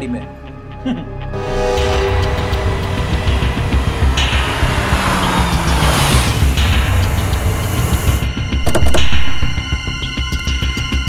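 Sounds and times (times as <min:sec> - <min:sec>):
dramatic music with low pulse: 0:00.0 - 0:11.0
car approaching on road: 0:01.8 - 0:09.6.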